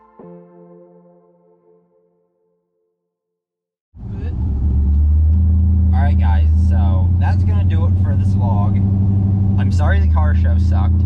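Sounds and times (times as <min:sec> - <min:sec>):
car interior driving rumble: 0:04.0 - 0:11.0.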